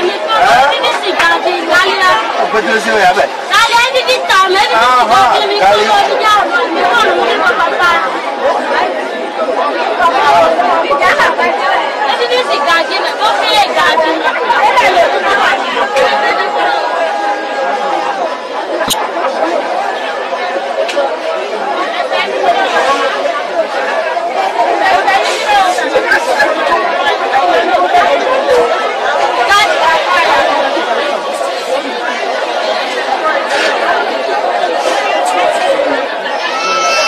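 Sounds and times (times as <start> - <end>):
voices talking over one another: 0.0 - 37.0.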